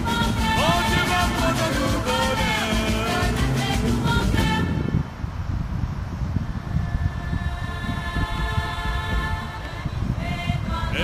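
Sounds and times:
vehicle road and wind noise: 0:00.0 - 0:11.0
faint music: 0:06.5 - 0:11.0.

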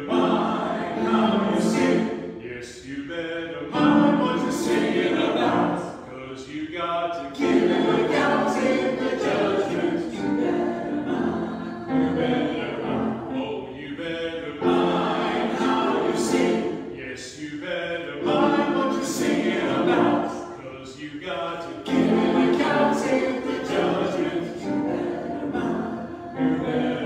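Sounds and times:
church choir singing: 0:00.0 - 0:27.0.

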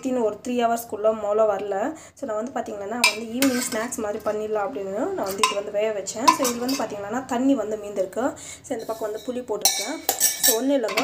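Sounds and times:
person talking: 0:00.0 - 0:11.0
ladle scraping a steel pot: 0:03.0 - 0:04.5, 0:05.2 - 0:07.1, 0:08.7 - 0:11.0.

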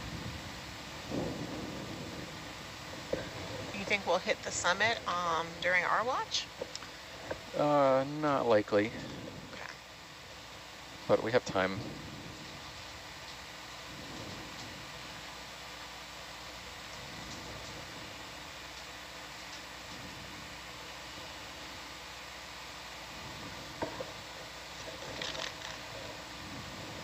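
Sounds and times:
audio feed hiss: 0:00.0 - 0:27.0.

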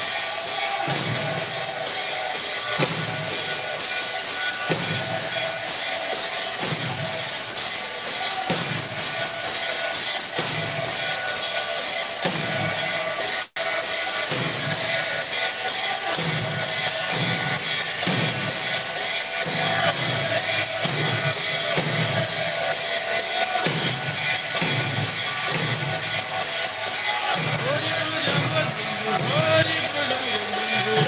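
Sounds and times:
bells and cymbals ringing: 0:00.0 - 0:31.0
drum beating slow rhythm: 0:00.0 - 0:31.0.

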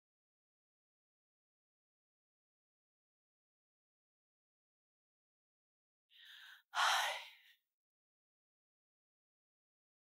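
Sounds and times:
person breathing in: 0:06.1 - 0:07.6
person sighing: 0:06.2 - 0:07.4.

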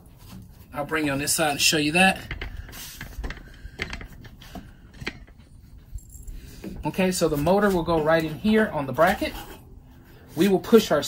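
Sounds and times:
light handling clicks and knocks: 0:02.1 - 0:08.4.

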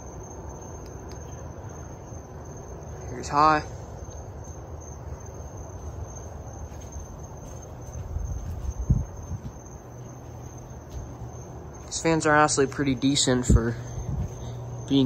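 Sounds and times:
ceiling fans humming: 0:00.0 - 0:15.0
cricket trill: 0:00.0 - 0:15.0.

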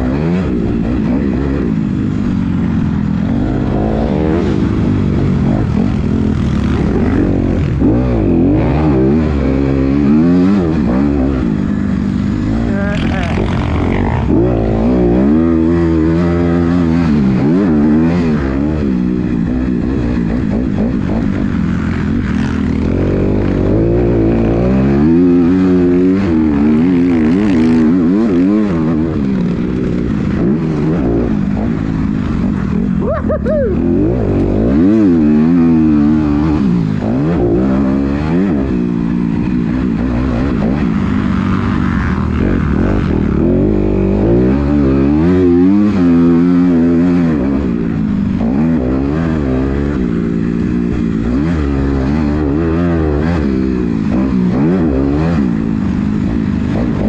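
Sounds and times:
dirt bike engine revving: 0:00.0 - 0:57.0.

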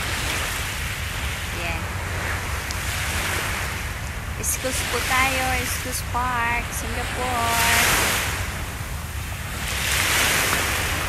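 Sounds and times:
small waves breaking on shore: 0:00.0 - 0:11.0
wind rumble on microphone: 0:00.0 - 0:11.0.

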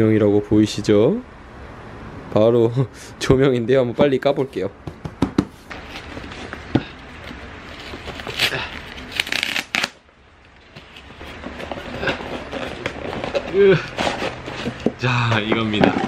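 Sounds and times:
cardboard box rustling and tearing: 0:05.7 - 0:10.0, 0:10.8 - 0:16.0.

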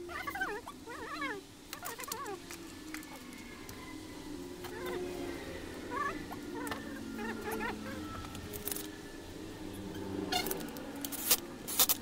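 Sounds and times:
animal wavering calls: 0:00.0 - 0:11.6
small metal parts clicking: 0:08.3 - 0:09.0, 0:10.4 - 0:12.0.

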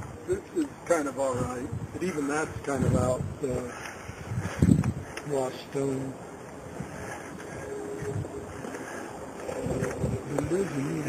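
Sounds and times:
low outdoor background rumble: 0:00.0 - 0:11.0.

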